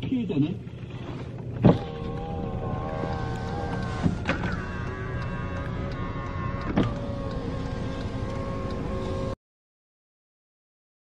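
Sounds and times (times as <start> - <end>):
electric motor whine of door mirror: 1.6 - 9.4.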